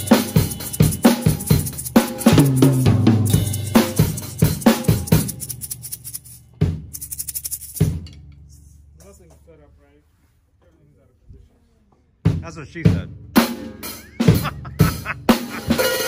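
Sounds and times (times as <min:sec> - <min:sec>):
acoustic drum kit played hard: 0:00.0 - 0:08.1, 0:12.2 - 0:16.0.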